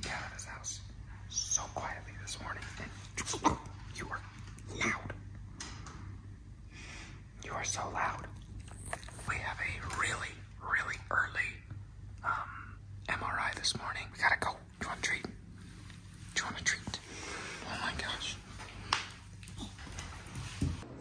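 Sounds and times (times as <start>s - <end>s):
whispered voices: 0.0s - 5.4s, 7.4s - 21.0s
faint low hum: 0.0s - 21.0s.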